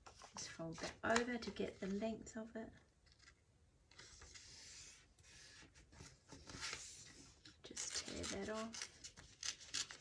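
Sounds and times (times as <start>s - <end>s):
paper crackling as folded: 7.6s - 10.0s.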